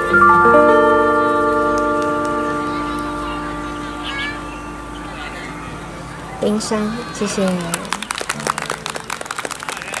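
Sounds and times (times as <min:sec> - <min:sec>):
low steady tone: 0:00.0 - 0:06.1
audience applauding: 0:07.1 - 0:10.0.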